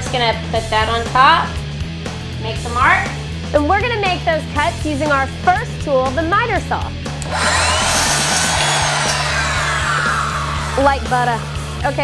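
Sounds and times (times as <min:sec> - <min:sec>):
miter saw whining: 0:07.2 - 0:12.0
saw cutting through board: 0:07.2 - 0:12.0.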